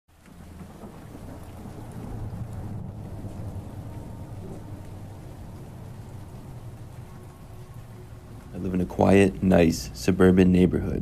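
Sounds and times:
steady rain: 0:00.1 - 0:11.0
thunder rumbling: 0:00.1 - 0:11.0.

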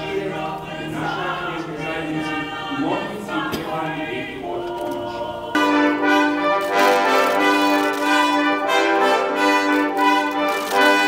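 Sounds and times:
choir singing: 0:00.0 - 0:11.0.

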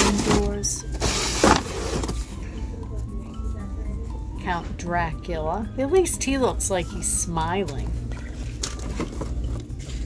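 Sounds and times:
sign scraping out of cardboard box: 0:00.0 - 0:02.2
faint store background: 0:00.0 - 0:10.0.

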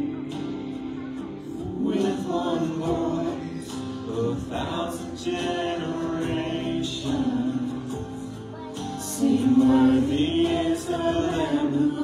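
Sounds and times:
man and woman singing: 0:00.0 - 0:12.0
musical accompaniment: 0:00.0 - 0:12.0.

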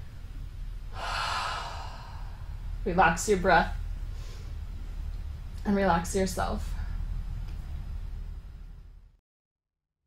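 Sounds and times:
person breathing through mouth: 0:00.9 - 0:02.6.

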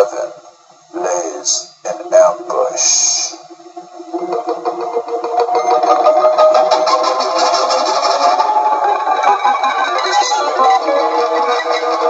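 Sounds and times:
droning electric guitars: 0:03.3 - 0:12.0.

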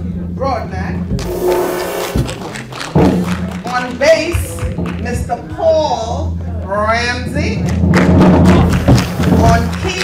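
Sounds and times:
drum kit playing: 0:01.0 - 0:05.6, 0:07.4 - 0:10.0
cymbals ringing: 0:01.2 - 0:03.2.

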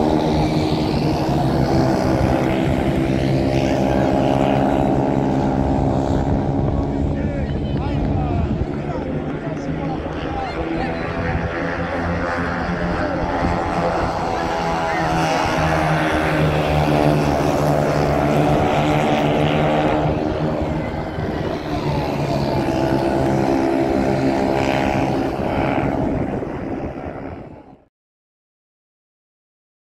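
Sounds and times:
race car engines droning: 0:00.0 - 0:27.8.

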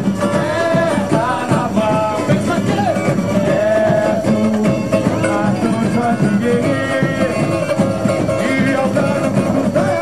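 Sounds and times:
samba singing over percussion: 0:00.0 - 0:10.0.

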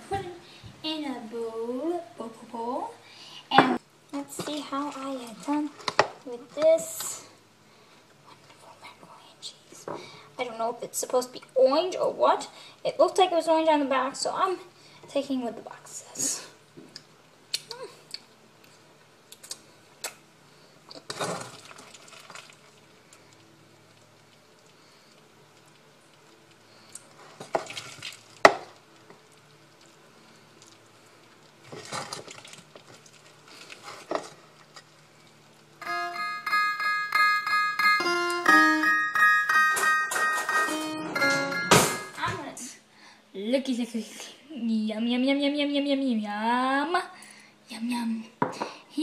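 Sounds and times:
music with held notes: 0:35.8 - 0:42.2.

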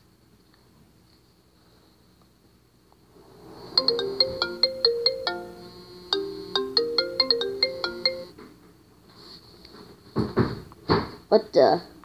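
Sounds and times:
electronic plucked ringtone melody: 0:03.7 - 0:08.3.

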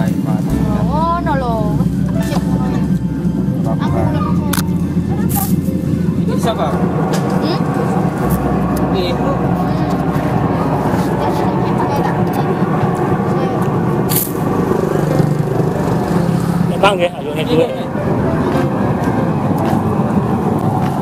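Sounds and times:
engine running: 0:00.0 - 0:21.0.

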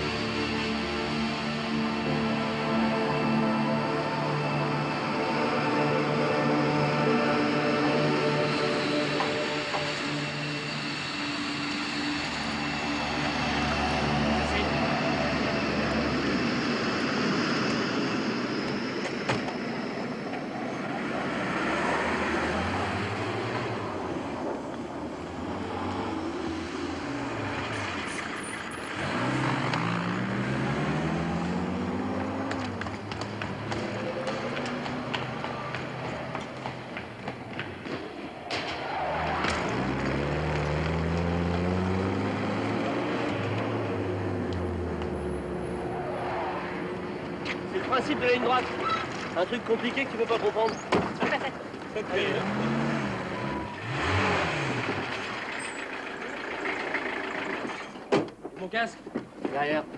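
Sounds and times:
jet engine whine: 0:00.0 - 0:58.0
vehicle engine revving: 0:25.5 - 0:36.9, 0:38.9 - 0:47.7, 0:52.0 - 0:57.8.

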